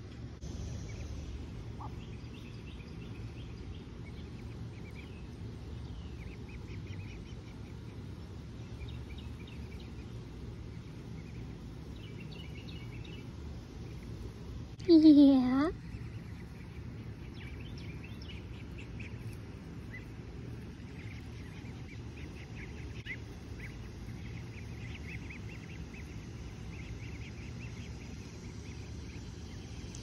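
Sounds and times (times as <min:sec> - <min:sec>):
ducklings peeping: 0:00.0 - 0:30.0
low background hum: 0:00.0 - 0:30.0.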